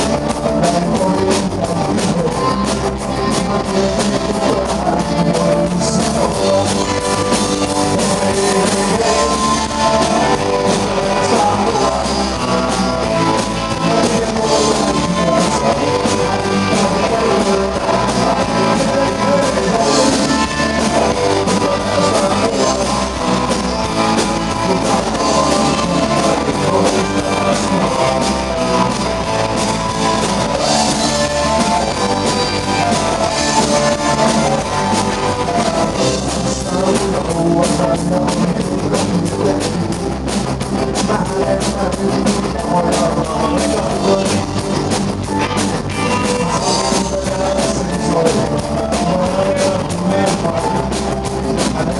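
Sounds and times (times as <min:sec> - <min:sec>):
bass guitar: 0:00.0 - 0:51.9
drum kit beat: 0:00.0 - 0:51.9
electric guitars: 0:00.0 - 0:51.9
rock band playing live: 0:00.0 - 0:51.9.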